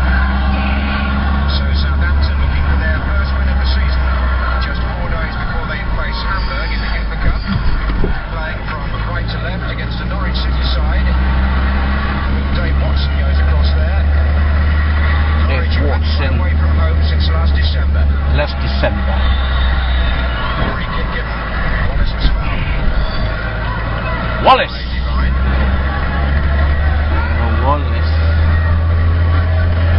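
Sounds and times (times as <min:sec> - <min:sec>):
car engine drone: 0:00.0 - 0:29.9
indistinct voices: 0:00.0 - 0:29.9
road noise: 0:00.0 - 0:29.9.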